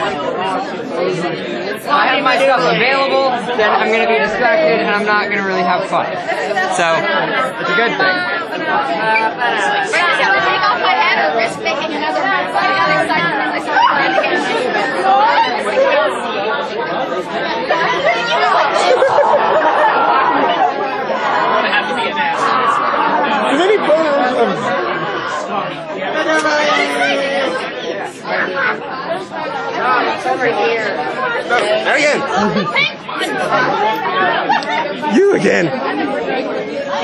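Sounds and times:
crowd chatter: 0.0 - 37.0.

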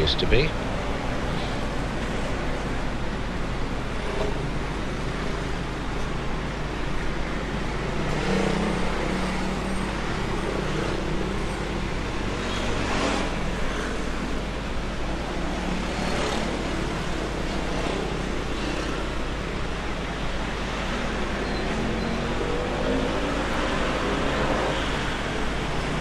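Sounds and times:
city street traffic: 0.0 - 26.0
vehicles passing: 0.0 - 26.0.

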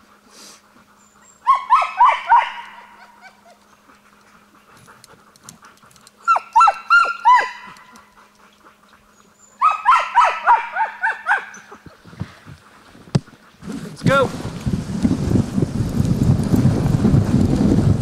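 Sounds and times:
sled dogs barking: 0.8 - 14.1.

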